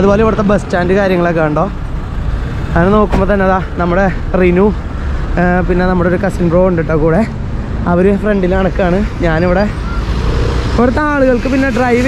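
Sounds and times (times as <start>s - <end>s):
street traffic passing: 0.0s - 12.0s
person talking: 2.7s - 9.8s, 10.7s - 12.0s.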